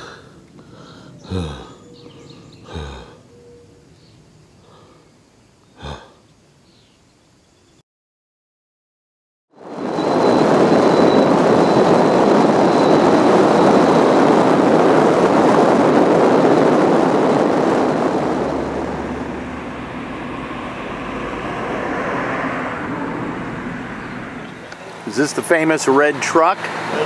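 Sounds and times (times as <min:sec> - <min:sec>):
car road and wind noise: 0:09.5 - 0:27.0.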